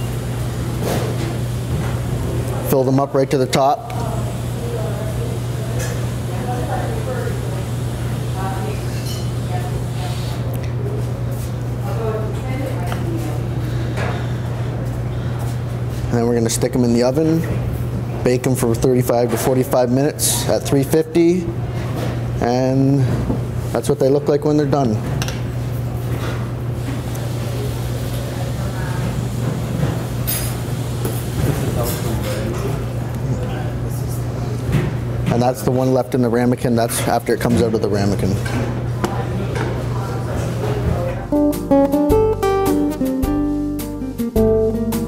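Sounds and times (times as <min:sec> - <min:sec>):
low kitchen hum: 0:00.0 - 0:45.0.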